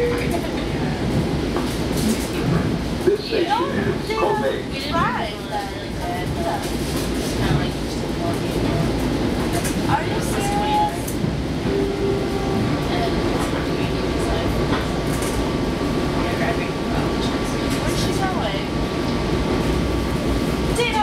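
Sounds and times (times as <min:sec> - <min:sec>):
train wheels rumbling on rail: 0:00.0 - 0:21.0.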